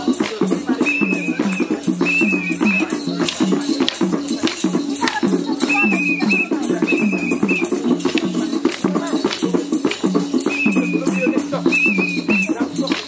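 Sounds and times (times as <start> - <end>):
folk music melody: 0.0 - 13.0
rattling percussive beats: 0.0 - 13.0.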